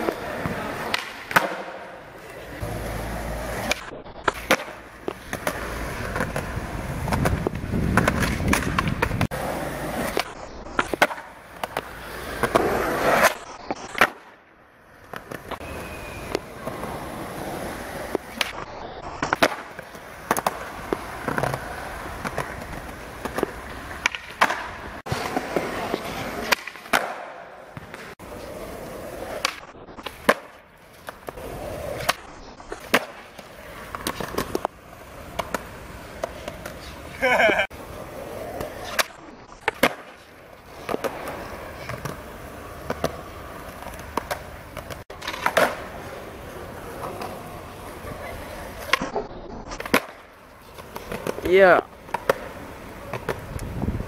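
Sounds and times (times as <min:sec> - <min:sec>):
skateboard clacks: 0:00.0 - 0:54.0
skateboard wheels rolling on concrete: 0:00.0 - 0:54.0.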